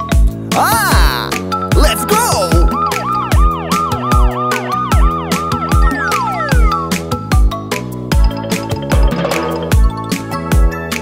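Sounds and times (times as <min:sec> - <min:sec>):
police siren yelp: 0:01.8 - 0:06.8.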